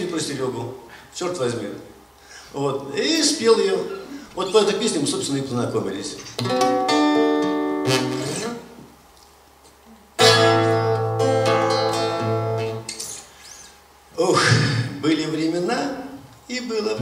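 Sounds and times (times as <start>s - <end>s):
acoustic guitar strumming: 6.4s - 8.7s, 10.2s - 13.2s.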